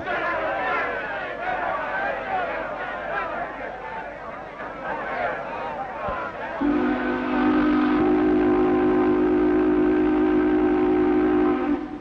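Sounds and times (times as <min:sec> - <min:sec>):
steam whistle blast: 0:06.6 - 0:12.0.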